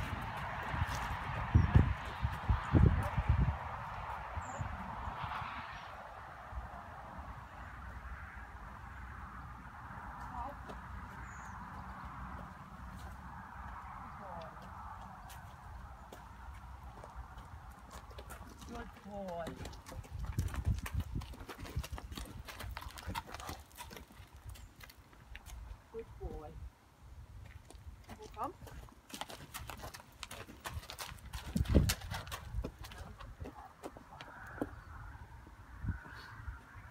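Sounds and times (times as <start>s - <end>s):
horse hooves on gravel: 0.0s - 4.9s, 10.1s - 26.1s, 27.4s - 35.6s.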